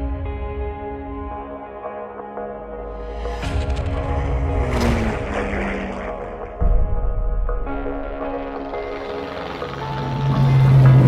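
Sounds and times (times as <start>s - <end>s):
background music: 0.0s - 11.0s
propeller airplane flying past: 4.0s - 6.6s, 7.8s - 11.0s.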